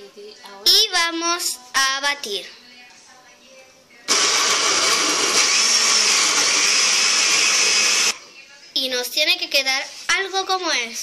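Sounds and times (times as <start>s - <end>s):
blender motor running: 4.1s - 8.2s.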